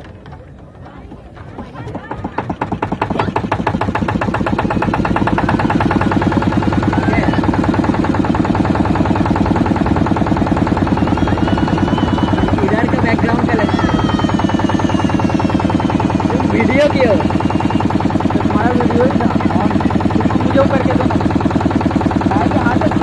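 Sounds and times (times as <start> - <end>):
boat engine running: 0.0 - 23.0.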